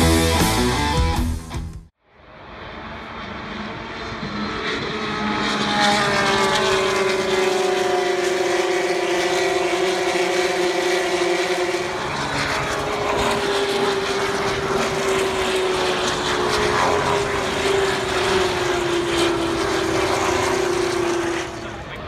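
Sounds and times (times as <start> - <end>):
race cars passing at high revs: 2.2 - 22.0.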